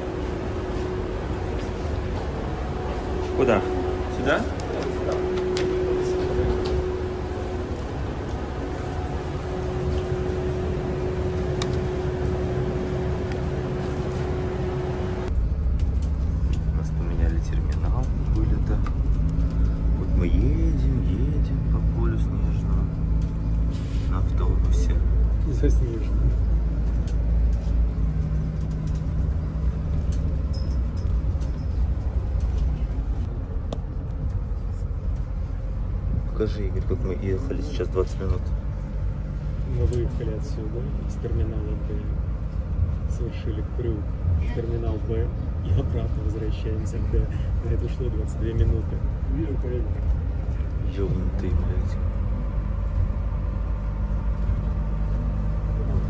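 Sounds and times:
faint passenger voices: 0:00.0 - 0:15.3, 0:34.2 - 0:56.0
bus engine rumble: 0:00.0 - 0:56.0
steady hum with constant tone: 0:00.0 - 0:56.0.

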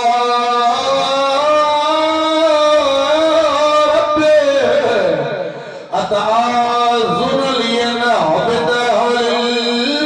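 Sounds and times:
man chanting over a microphone: 0:00.0 - 0:10.0.

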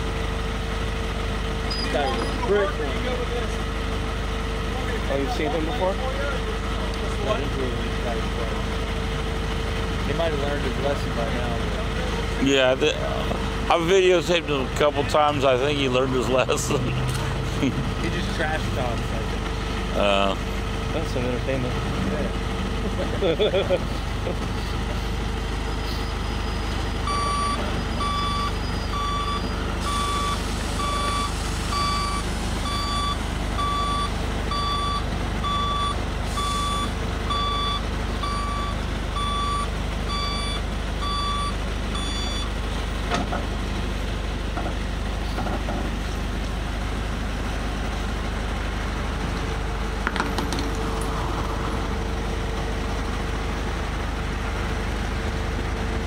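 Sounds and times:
truck backup alarm beeping: 0:00.0 - 0:06.2, 0:24.8 - 0:43.0
truck engine running: 0:00.0 - 0:56.0
sharp knocks: 0:50.0 - 0:50.9.

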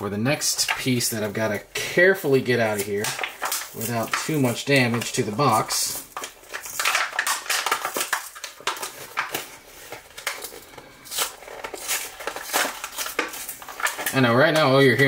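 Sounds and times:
packaging being torn open: 0:02.6 - 0:15.0.

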